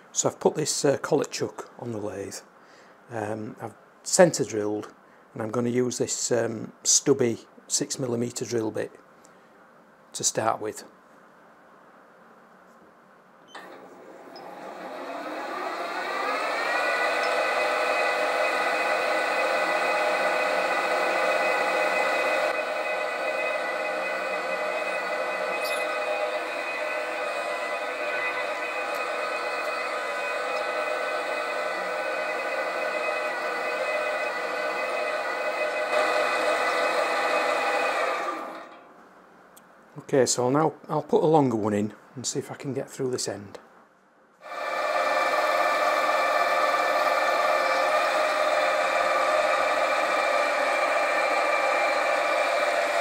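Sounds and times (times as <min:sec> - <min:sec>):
lathe motor whine: 0:13.5 - 0:38.8, 0:44.4 - 0:53.0.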